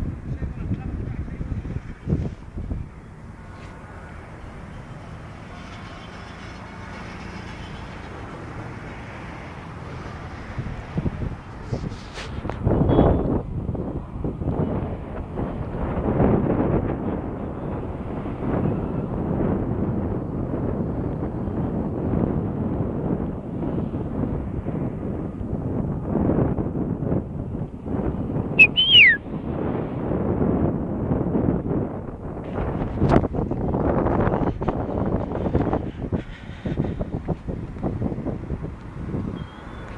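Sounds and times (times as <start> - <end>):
wind buffeting microphone: 0.0 - 39.9
high rising falling whistle: 28.6 - 29.2.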